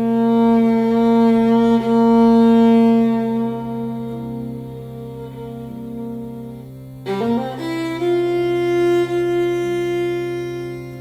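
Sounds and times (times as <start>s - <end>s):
low steady drone: 0.0s - 11.0s
viola long bowed note: 0.0s - 11.0s.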